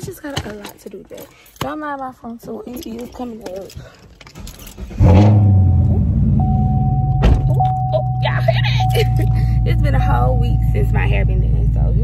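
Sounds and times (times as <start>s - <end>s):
car engine starting and idling: 3.6s - 12.0s.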